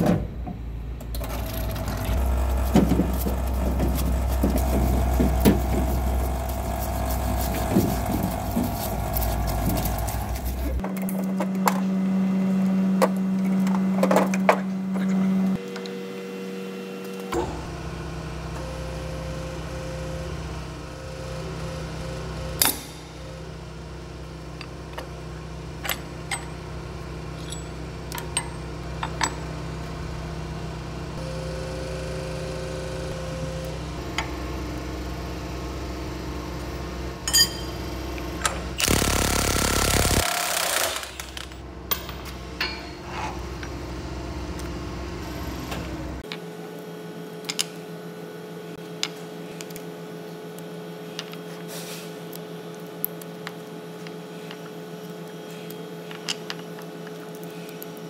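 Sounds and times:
hydraulic press humming: 0.0 - 11.9, 16.9 - 29.6
steady electric hum: 0.3 - 11.2
pump humming: 1.2 - 10.8.

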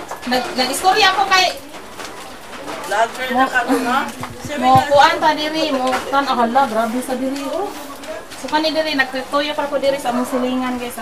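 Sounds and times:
voices: 2.3 - 11.0
person's voice: 3.7 - 5.6.

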